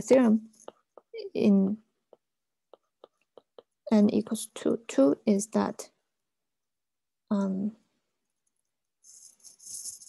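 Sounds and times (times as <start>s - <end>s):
faint scratchy rustle: 9.0s - 10.0s.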